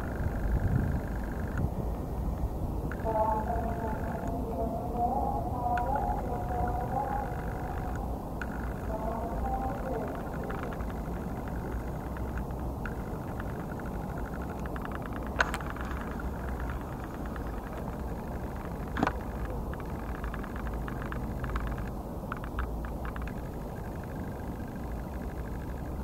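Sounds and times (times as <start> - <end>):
low outdoor rumble and hiss: 0.0 - 26.0
sharp clicks: 0.0 - 26.0.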